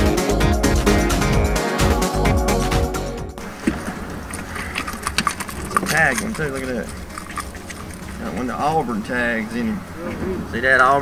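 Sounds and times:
background music: 0.0s - 8.6s
outdoor noise on boat deck: 3.4s - 11.0s.

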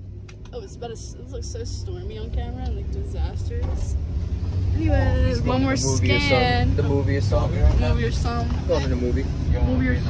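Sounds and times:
van driving rumble: 0.0s - 10.0s
people talking: 0.5s - 4.0s, 4.8s - 10.0s.

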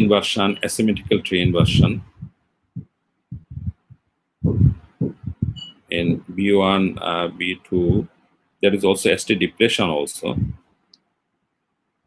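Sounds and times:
muffled man's voice: 0.0s - 2.3s, 4.5s - 10.6s.

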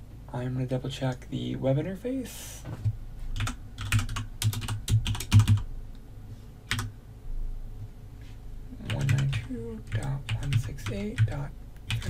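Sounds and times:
computer keyboard typing: 3.4s - 5.7s, 6.7s - 6.9s, 8.8s - 12.0s.

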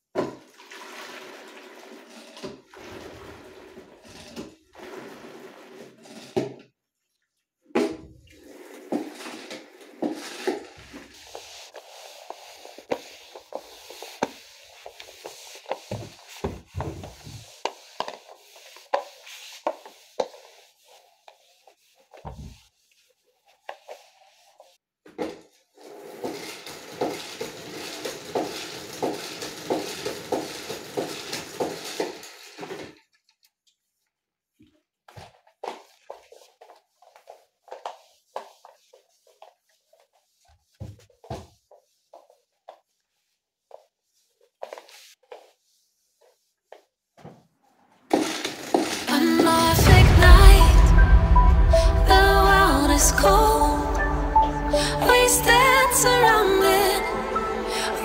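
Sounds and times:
mop scraping tiled floor: 0.1s - 58.0s
mop clattering against bucket: 7.7s - 14.9s, 26.2s - 33.0s, 48.1s - 49.5s
spin mop rapid clicking: 25.8s - 32.8s, 48.1s - 49.5s.

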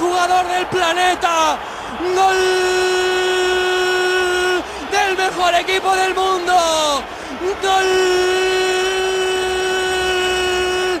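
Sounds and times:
commentator's long goal shout: 0.0s - 11.0s.

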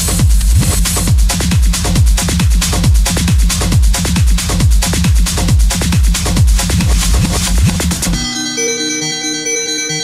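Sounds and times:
kick drum and hi-hats: 0.0s - 8.2s
synthesizer chords: 4.5s - 10.0s.

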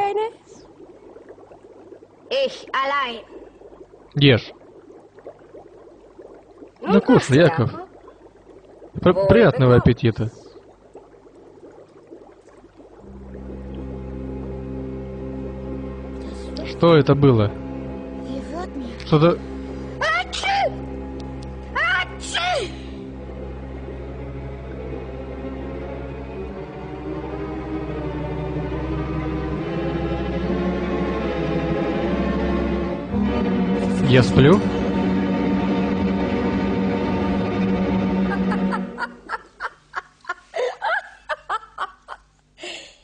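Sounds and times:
low drone of film music: 13.1s - 39.4s.

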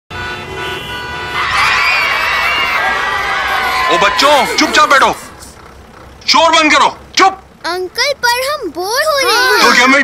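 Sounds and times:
car horns honking: 0.1s - 7.6s
children's voices clamouring: 1.4s - 5.2s, 7.7s - 10.0s.

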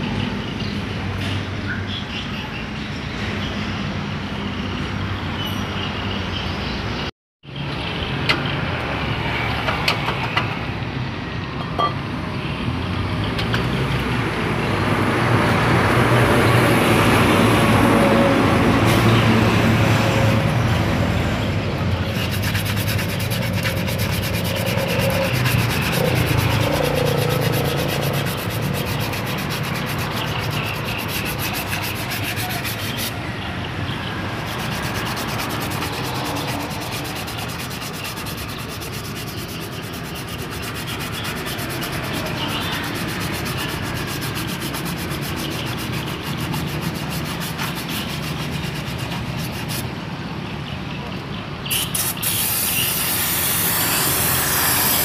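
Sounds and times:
sandpaper rubbing brake shoes: 21.8s - 33.3s, 34.0s - 50.0s, 51.7s - 55.0s.

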